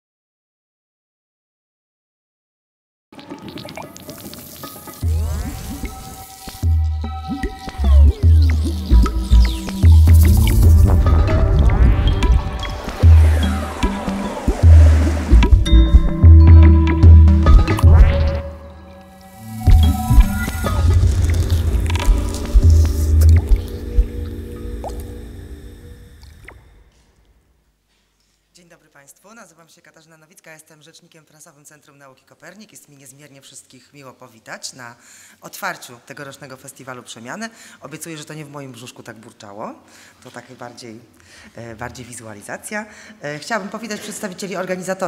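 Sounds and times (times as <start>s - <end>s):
stomach rumbling with gurgles: 3.2s - 6.0s, 19.7s - 25.5s
food crackling and sizzling: 3.2s - 6.7s, 19.1s - 23.8s
squelchy dripping sounds: 3.2s - 11.3s, 18.0s - 25.6s
sustained low electronic tones: 5.0s - 26.9s.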